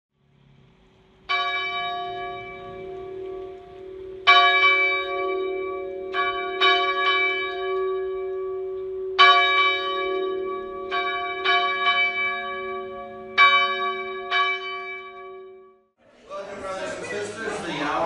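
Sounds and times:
church bell ringing: 0:01.2 - 0:15.8.

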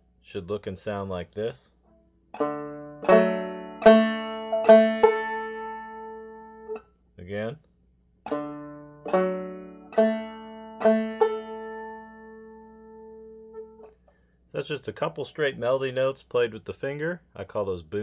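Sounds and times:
banjo notes and strums: 0:01.9 - 0:06.8, 0:08.2 - 0:13.9.

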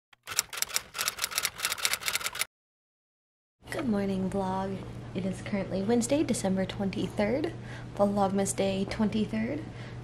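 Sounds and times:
typewriter key clacks: 0:00.2 - 0:02.5.

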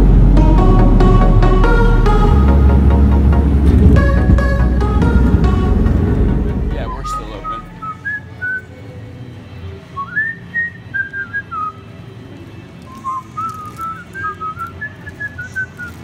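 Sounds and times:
person whistling a tune: 0:06.8 - 0:08.7, 0:12.9 - 0:16.0.

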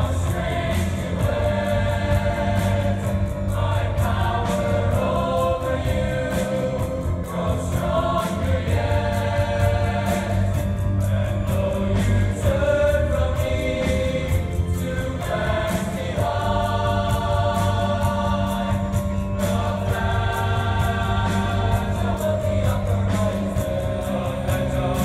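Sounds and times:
choir singing: 0:00.0 - 0:25.0
instrumental accompaniment with bass: 0:00.0 - 0:25.0.

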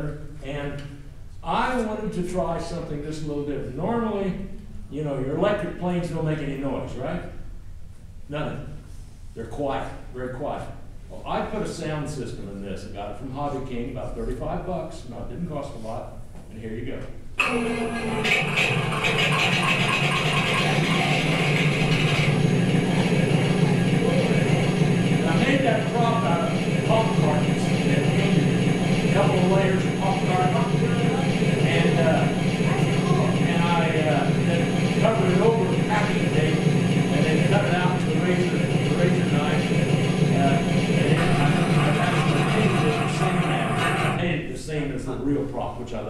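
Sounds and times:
recorded aircraft engine drone: 0:17.4 - 0:44.2.

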